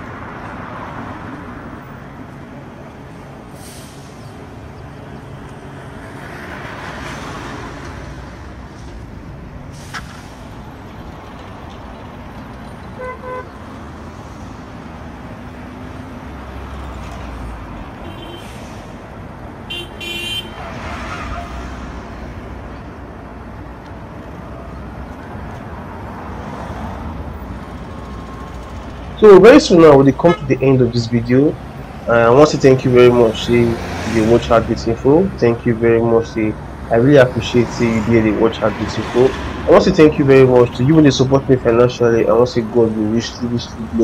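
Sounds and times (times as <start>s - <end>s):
cars passing: 0.0s - 44.0s
double horn toots: 13.0s - 13.6s, 18.0s - 18.7s, 19.7s - 21.7s.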